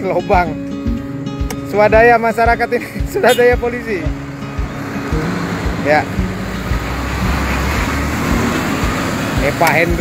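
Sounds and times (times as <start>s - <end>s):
background music: 0.0s - 10.0s
vehicle passing by: 3.8s - 10.0s.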